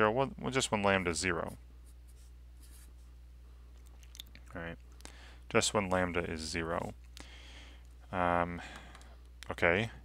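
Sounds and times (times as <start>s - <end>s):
low steady hum: 0.0s - 10.0s
marker scratching on paper: 1.8s - 3.1s.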